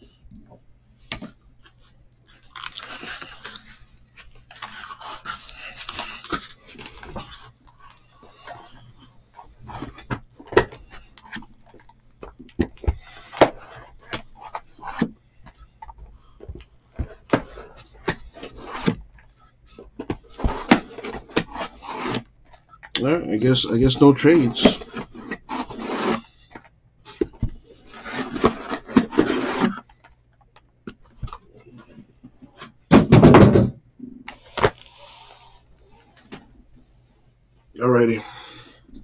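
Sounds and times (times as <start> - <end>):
plastic wrap crinkling: 1.8 - 8.6
cardboard boxes knocking on table: 32.9 - 33.8.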